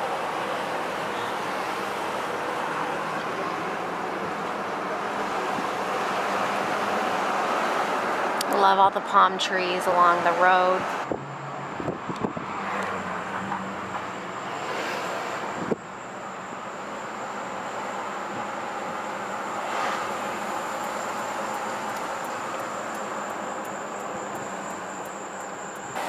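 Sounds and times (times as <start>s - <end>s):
road and tyre noise: 0.0s - 26.0s.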